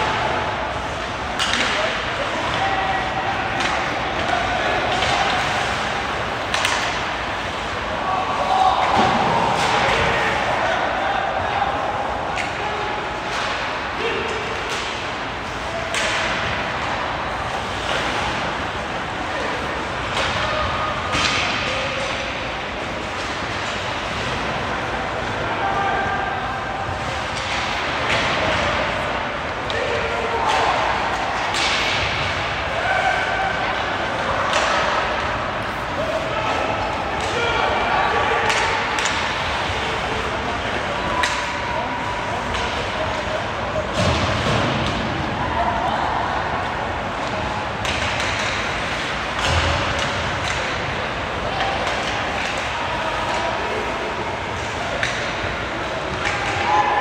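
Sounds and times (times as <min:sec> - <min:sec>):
hockey sticks and puck clacking: 0:00.0 - 0:57.0
players shouting: 0:00.0 - 0:57.0.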